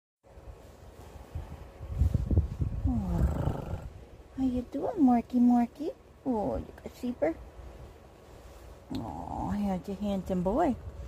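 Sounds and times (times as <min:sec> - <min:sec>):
thumps and rubbing on microphone: 0:00.6 - 0:03.9
cat low drawn-out vocal sound: 0:02.8 - 0:04.0.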